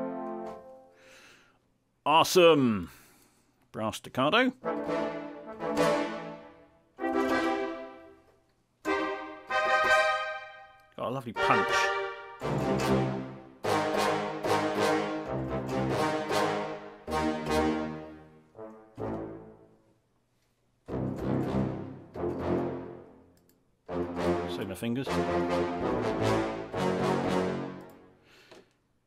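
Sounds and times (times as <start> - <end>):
staccato brass chords: 4.5 - 8.2, 8.8 - 10.8, 11.4 - 19.8, 20.9 - 28.2.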